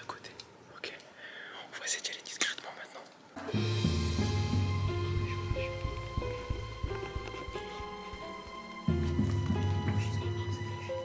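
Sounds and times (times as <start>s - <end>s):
hushed whispering voices: 0.0s - 3.2s, 9.7s - 11.0s
background music with low bass: 3.4s - 11.0s.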